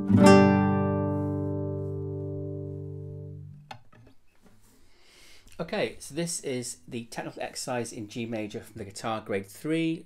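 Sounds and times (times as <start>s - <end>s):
classical guitar chord ringing: 0.0s - 3.8s.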